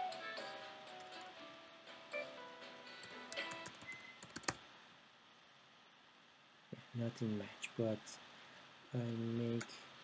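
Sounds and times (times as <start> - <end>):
soft background music: 0.0 - 4.6
computer keyboard typing: 3.0 - 4.6.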